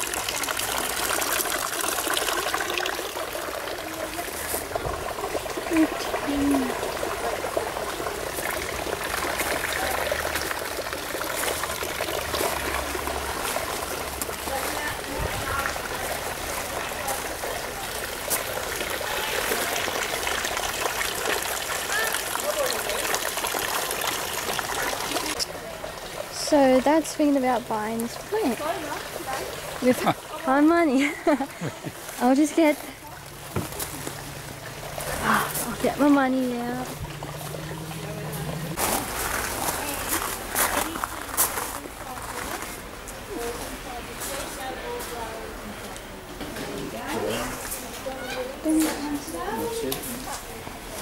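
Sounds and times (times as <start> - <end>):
running water trickling: 0.0 - 51.0.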